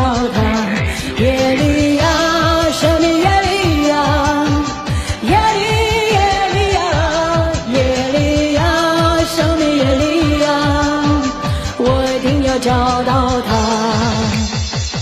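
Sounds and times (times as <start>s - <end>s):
fast kick-drum beat: 0.0s - 15.0s
pop dance backing track: 0.0s - 15.0s.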